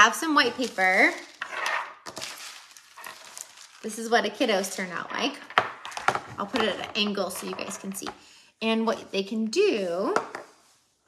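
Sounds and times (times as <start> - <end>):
paper rustling scrape: 0.5 - 4.0.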